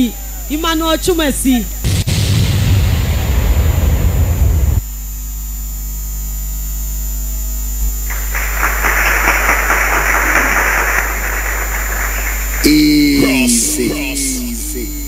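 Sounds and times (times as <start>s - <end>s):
loud noise: 0.0s - 4.8s, 8.0s - 15.0s
electrical mains hum: 0.0s - 15.0s
rough rushing noise: 1.9s - 4.8s.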